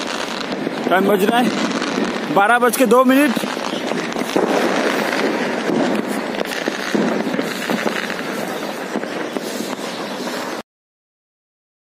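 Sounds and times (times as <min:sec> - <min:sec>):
fireworks crackling and banging: 0:00.0 - 0:10.6.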